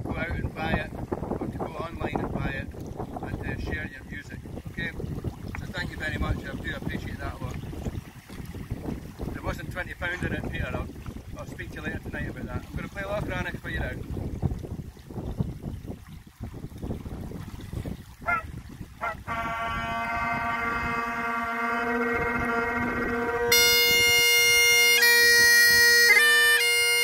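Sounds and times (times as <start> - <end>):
wind on microphone: 0.0 - 26.9
bagpipe chanter melody: 19.3 - 27.0
bagpipe drones: 19.3 - 27.0
bagpipe squeaks: 19.3 - 27.0.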